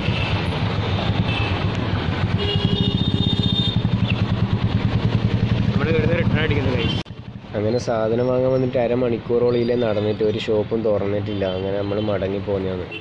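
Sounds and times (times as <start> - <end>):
motorcycle engine running: 0.0 - 7.4
street traffic: 0.0 - 13.0.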